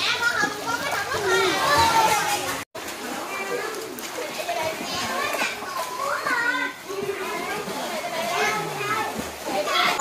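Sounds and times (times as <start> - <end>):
children calling and chattering: 0.0 - 10.0
water sloshing: 0.0 - 10.0.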